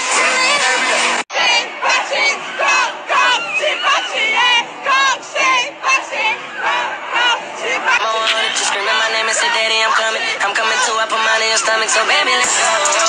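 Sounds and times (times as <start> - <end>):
concert crowd screaming and shouting: 0.0 - 13.0.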